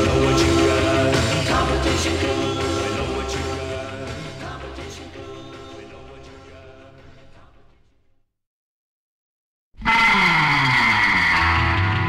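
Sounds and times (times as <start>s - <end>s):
tyre screech: 9.8s - 12.0s.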